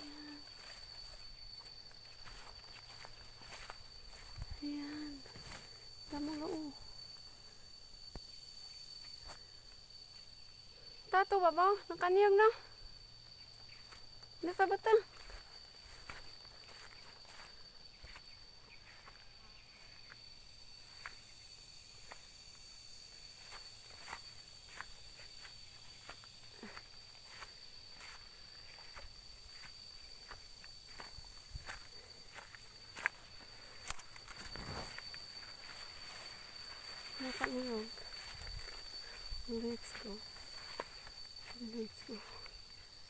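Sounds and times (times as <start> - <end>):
footsteps through grass: 0.0 - 6.7, 15.1 - 20.2, 23.3 - 43.0.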